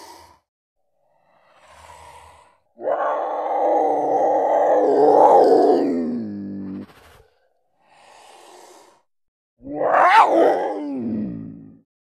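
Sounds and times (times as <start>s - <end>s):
cartoon panther growl: 2.8s - 6.9s, 9.6s - 11.8s.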